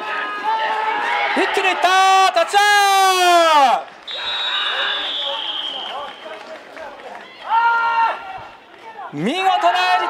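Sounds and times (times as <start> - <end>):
shouts and cheers: 0.0 - 6.4, 7.1 - 10.0
referee's whistle blast: 4.1 - 6.4.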